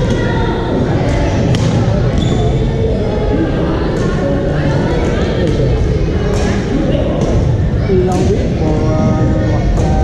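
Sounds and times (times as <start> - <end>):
echoing chatter of players: 0.0 - 10.0.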